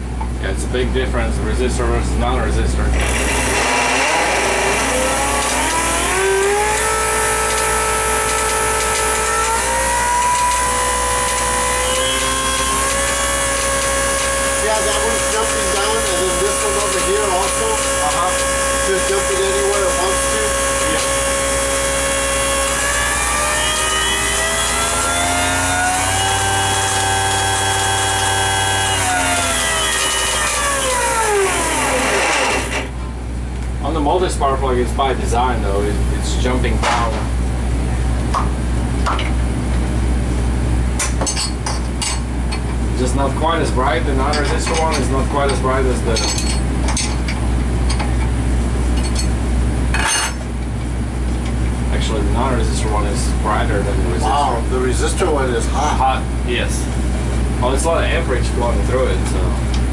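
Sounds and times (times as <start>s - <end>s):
mechanical whine of ignition rig: 2.8s - 33.0s.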